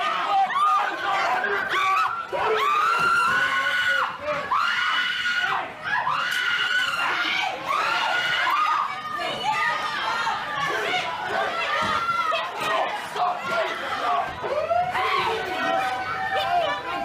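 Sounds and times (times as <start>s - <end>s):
crowd shouting and screaming: 0.0s - 17.0s
high strained yells: 0.0s - 17.0s.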